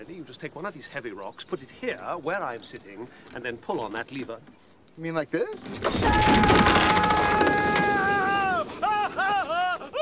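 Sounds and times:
catapult firing crash: 0:05.6 - 0:08.2
man yelling: 0:06.0 - 0:09.8
man screaming: 0:06.0 - 0:10.0.

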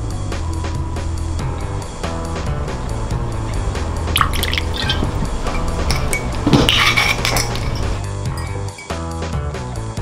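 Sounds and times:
liquid poured into a glass: 0:03.5 - 0:07.8
glass clink: 0:04.2 - 0:09.3.

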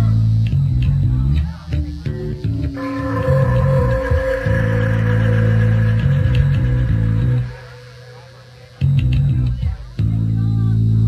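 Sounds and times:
electric bass guitar riff: 0:00.0 - 0:11.0.

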